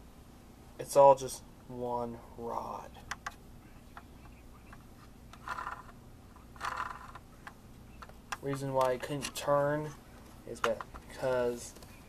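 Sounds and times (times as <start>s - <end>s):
toy car wheel clicks: 5.3s - 7.6s.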